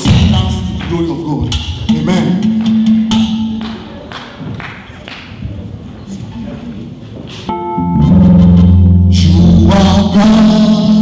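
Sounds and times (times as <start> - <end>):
live band music: 0.0 - 4.1, 7.2 - 11.0.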